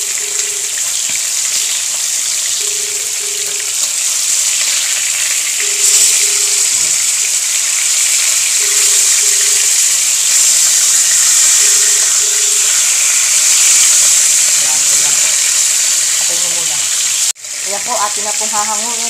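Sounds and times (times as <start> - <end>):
fish frying in oil: 0.0 - 19.0.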